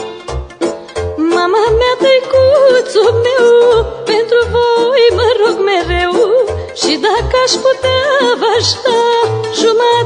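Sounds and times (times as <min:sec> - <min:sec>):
instrumental accompaniment with low beat: 0:00.0 - 0:02.5
woman singing folk song: 0:01.2 - 0:10.0.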